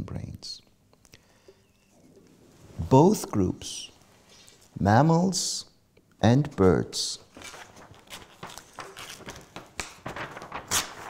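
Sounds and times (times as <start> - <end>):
paper rustling: 7.2 - 11.0.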